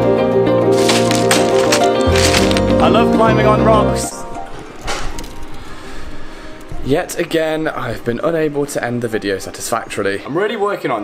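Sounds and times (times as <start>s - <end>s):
faint music: 0.1s - 11.0s.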